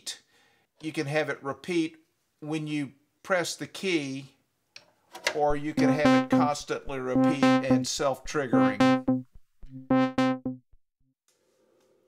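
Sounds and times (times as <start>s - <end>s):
low buzzy synthesizer note repeating: 5.6s - 10.8s.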